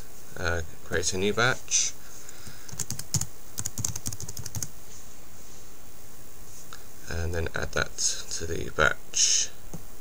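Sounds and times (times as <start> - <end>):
computer keyboard typing: 2.7 - 4.7.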